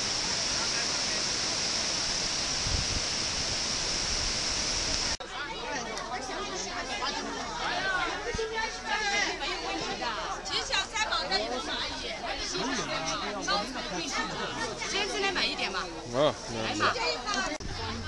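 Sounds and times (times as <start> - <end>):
people talking over one another: 5.2 - 18.0.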